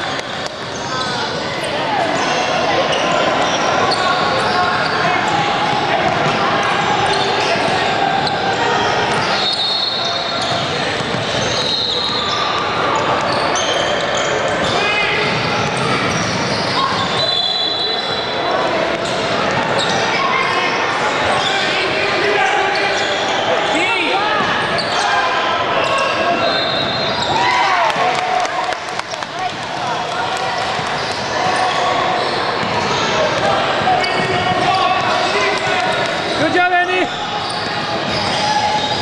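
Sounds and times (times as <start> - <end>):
sneakers squeaking on floor: 0.0 - 21.8, 22.4 - 27.8, 30.5 - 39.0.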